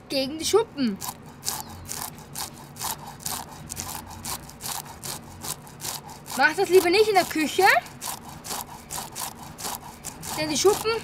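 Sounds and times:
fish scaler scraping scales: 0:00.9 - 0:11.0.

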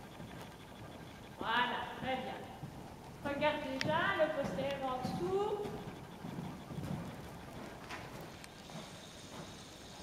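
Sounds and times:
horse hoofbeats on sand: 0:01.4 - 0:10.0.

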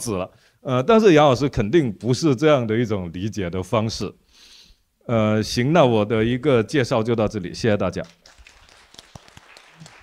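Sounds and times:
quiet applause: 0:08.1 - 0:10.0.

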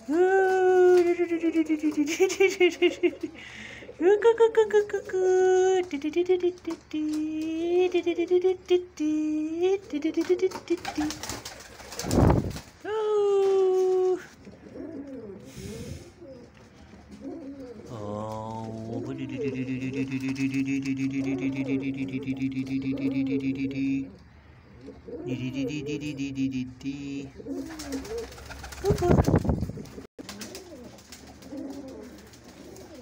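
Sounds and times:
pigeon cooing: 0:00.0 - 0:08.8, 0:09.6 - 0:12.4, 0:13.4 - 0:33.0.

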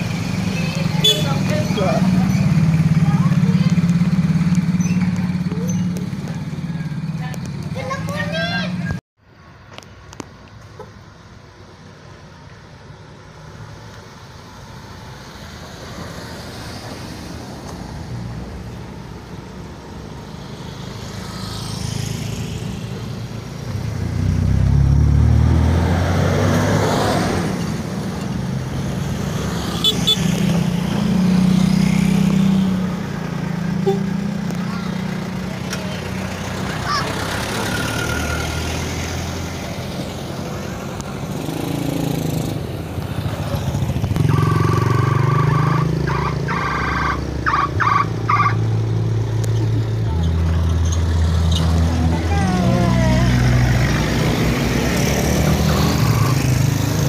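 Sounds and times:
vehicles driving past: 0:00.0 - 0:57.0.

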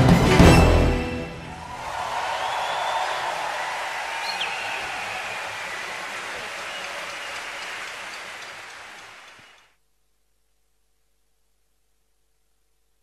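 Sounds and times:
audience applauding: 0:01.3 - 0:09.7.

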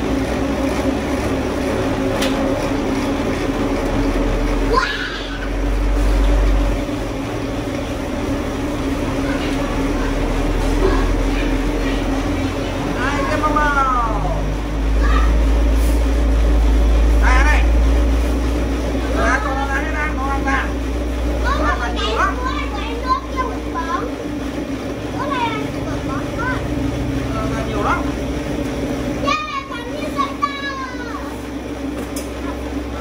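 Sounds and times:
cotton candy machine humming: 0:00.0 - 0:33.0.

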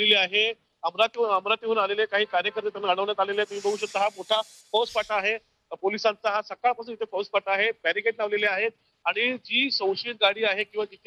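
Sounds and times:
reporter talking: 0:00.0 - 0:11.0
high hiss: 0:03.1 - 0:05.5.

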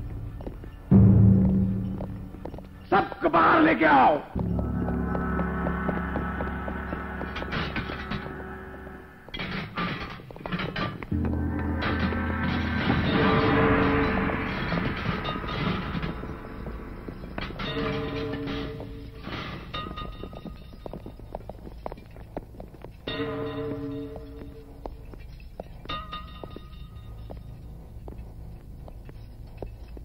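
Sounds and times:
low rumble: 0:00.0 - 0:02.9, 0:04.3 - 0:09.8, 0:11.0 - 0:21.3
ambient drone with held tones: 0:04.4 - 0:09.7, 0:11.0 - 0:21.4.

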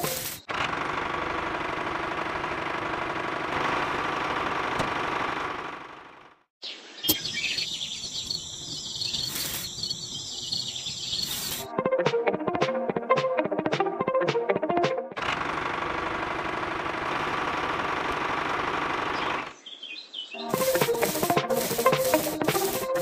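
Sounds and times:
birds chirping: 0:06.6 - 0:11.7, 0:19.2 - 0:23.0.

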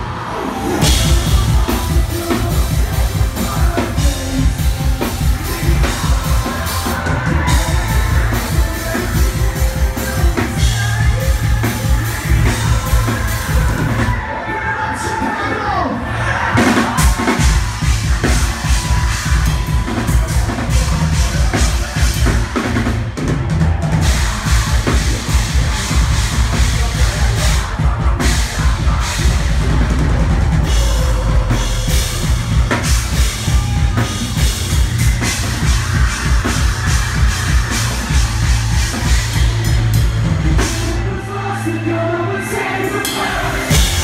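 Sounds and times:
heavy drumming: 0:00.0 - 0:41.7, 0:42.4 - 0:44.0
metalcore band playing live: 0:00.0 - 0:44.0.

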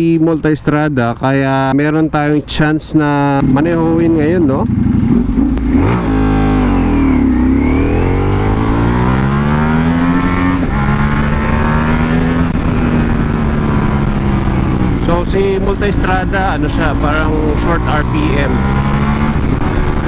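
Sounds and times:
motorcycle engine accelerating: 0:03.4 - 0:20.0.

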